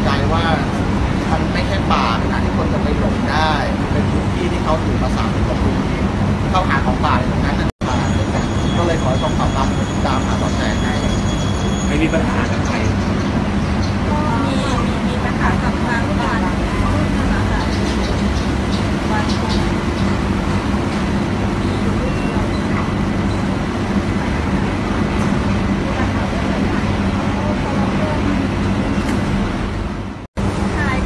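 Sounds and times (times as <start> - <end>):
low mechanical drone: 0.0 - 31.0
people speaking in a crowd: 14.1 - 18.3.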